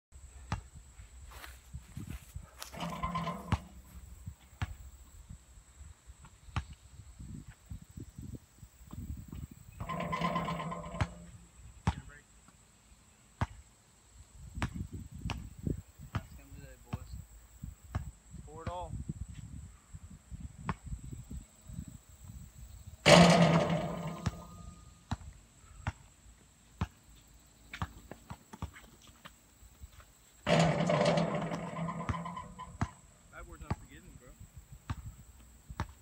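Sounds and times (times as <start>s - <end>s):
basketball bouncing on pavement: 14.6s - 15.5s, 25.1s - 26.0s, 30.5s - 34.0s, 34.8s - 36.0s.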